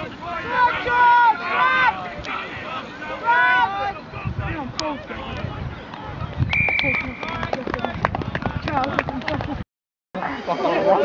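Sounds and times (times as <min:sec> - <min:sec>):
people shouting outdoors: 0:00.0 - 0:06.2.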